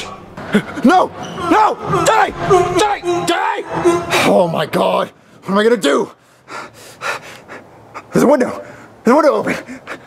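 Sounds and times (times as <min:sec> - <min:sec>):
man breathing heavily: 0:06.2 - 0:10.0.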